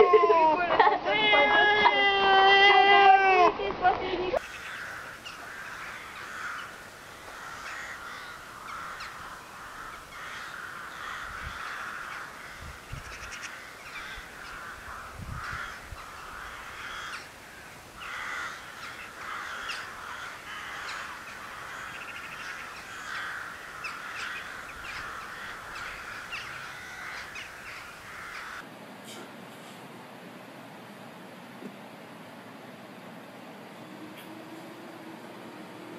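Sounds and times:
harsh cawing animal calls: 4.4s - 28.6s.

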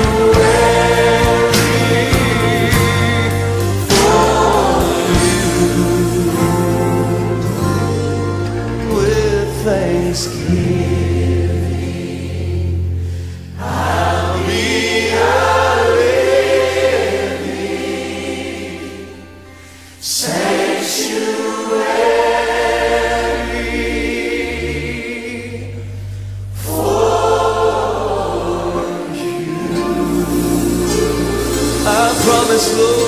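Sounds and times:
choir singing a gospel hymn: 0.0s - 33.0s.

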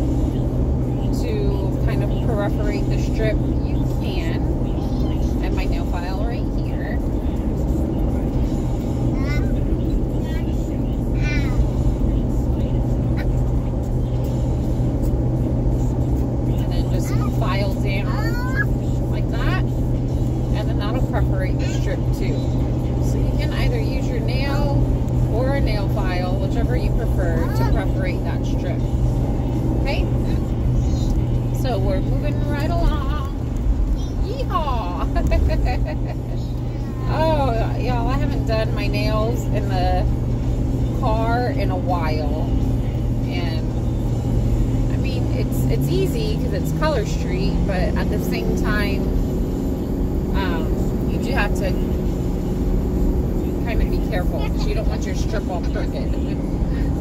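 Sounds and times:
faint voices: 0.0s - 49.2s, 53.5s - 57.0s
car cabin road and engine drone: 0.0s - 57.0s.

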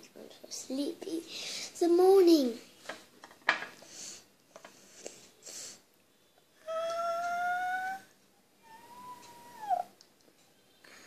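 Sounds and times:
high-pitched whining calls: 6.7s - 9.9s.

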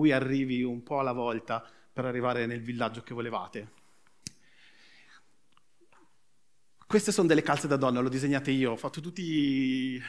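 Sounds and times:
man speaking: 0.0s - 3.8s, 6.8s - 10.0s
faint breath: 3.7s - 5.4s.

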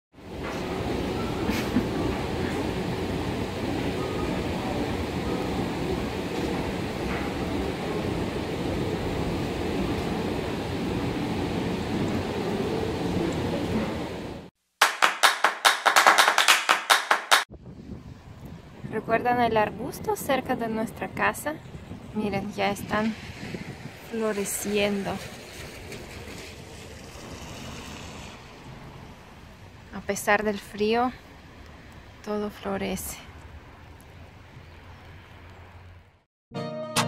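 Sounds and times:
loud sharp rhythmic beats: 14.8s - 17.5s.

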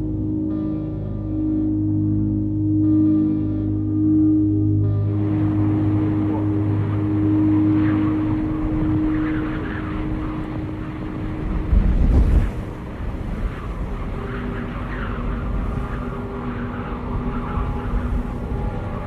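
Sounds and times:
dark ambient drone music: 0.0s - 19.0s
low rumbling swell: 0.0s - 19.0s.

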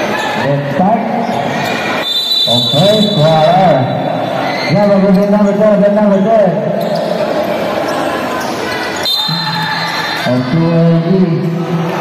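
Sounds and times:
basketball game noise: 0.0s - 12.0s.

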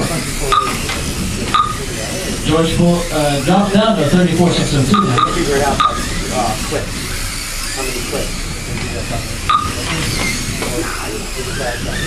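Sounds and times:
small electric motors whining: 0.0s - 12.0s.

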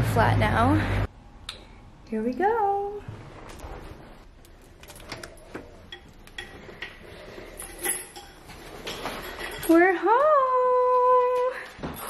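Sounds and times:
keys jingling: 4.5s - 6.6s, 7.3s - 10.0s.

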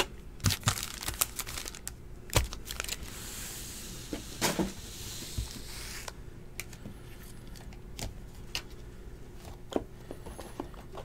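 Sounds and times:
foil packs rustling: 0.4s - 3.1s.

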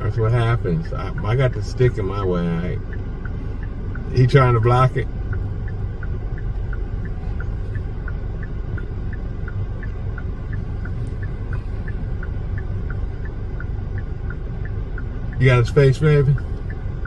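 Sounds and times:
car engine idling: 0.0s - 17.0s
indicator flasher ticking: 0.0s - 17.0s.

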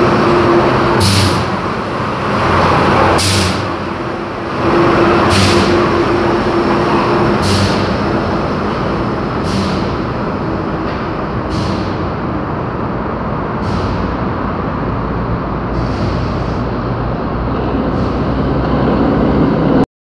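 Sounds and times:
metro train running: 0.0s - 19.8s
steady whine: 0.0s - 19.8s.

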